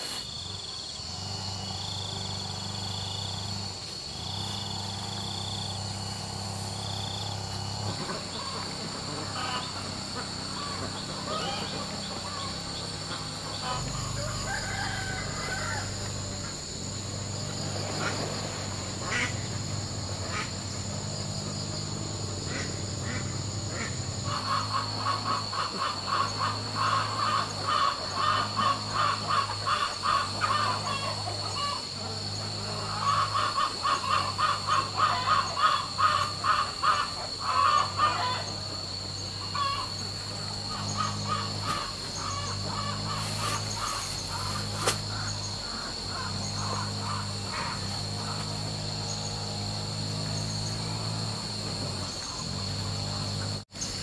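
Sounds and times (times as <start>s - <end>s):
high buzz of insects: 0.0s - 54.0s
ducks quacking: 4.8s - 15.1s, 17.6s - 20.7s, 22.4s - 49.2s.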